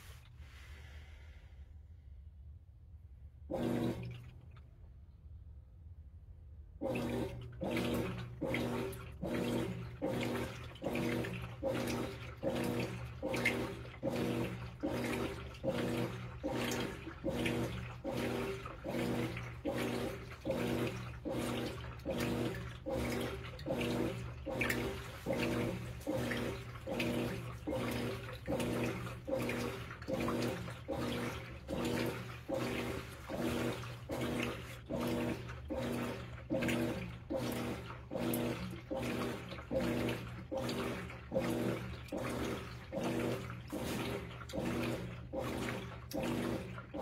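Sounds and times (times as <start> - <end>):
washing machine motor hum: 3.3 - 4.8, 6.6 - 47.0
clothes sloshing in water: 6.8 - 47.0.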